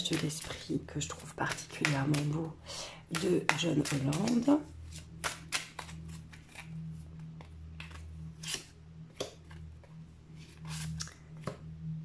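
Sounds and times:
steady low hum: 0:00.0 - 0:12.0
cards shuffling papery swishes: 0:03.2 - 0:06.8.

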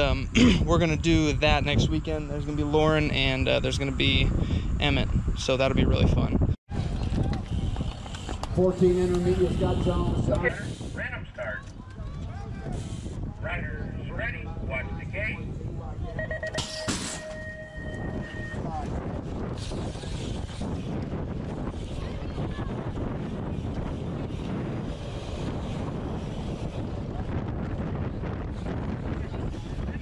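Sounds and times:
wind on microphone: 0:00.0 - 0:30.0
electronic start tone: 0:16.2 - 0:18.6.

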